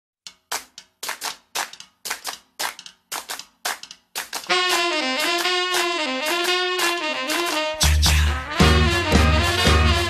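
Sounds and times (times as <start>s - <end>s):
dry snappy drum hits: 4.4s - 10.0s.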